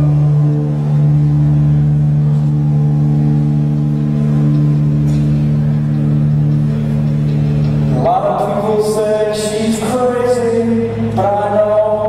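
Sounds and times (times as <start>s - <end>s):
electric guitar and bass drone: 0.0s - 12.0s.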